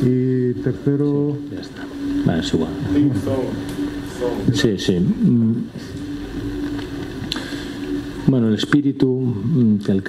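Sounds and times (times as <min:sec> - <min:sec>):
room background hum: 0:00.0 - 0:10.0.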